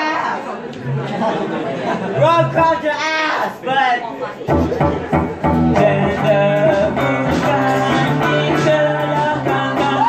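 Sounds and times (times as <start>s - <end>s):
electric guitar chords: 4.5s - 10.0s.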